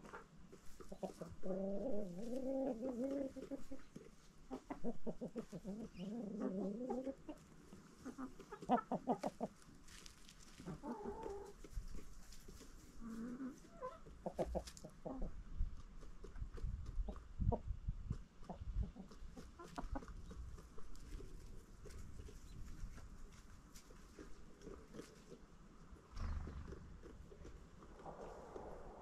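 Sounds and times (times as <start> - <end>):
chickens clucking: 0.0 - 29.0.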